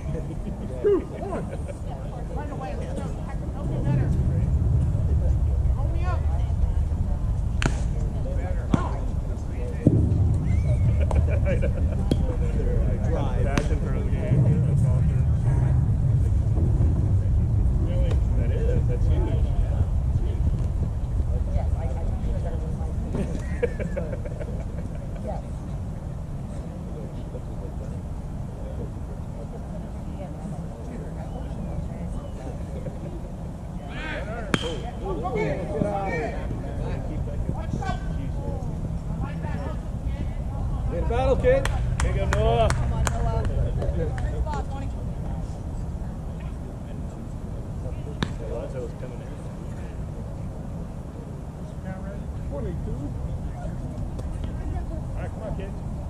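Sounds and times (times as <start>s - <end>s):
distant voices: 0.0s - 56.0s
bat hitting ball: 7.6s - 8.0s, 34.5s - 35.0s.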